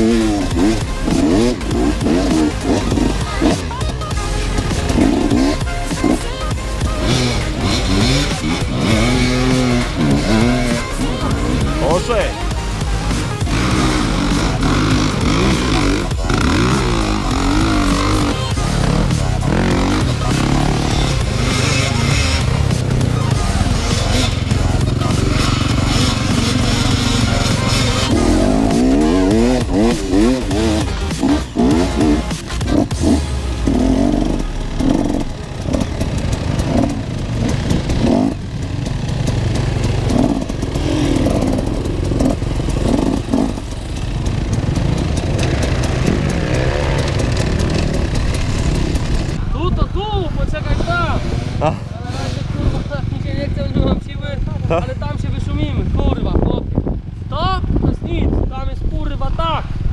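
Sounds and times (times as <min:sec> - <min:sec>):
background music with vocals: 0:00.0 - 0:47.6
dirt bike engines revving: 0:00.0 - 0:59.9.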